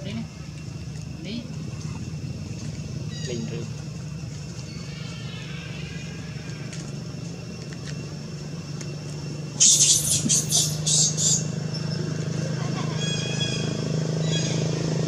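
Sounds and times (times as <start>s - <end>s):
low mechanical hum: 0.0s - 15.0s.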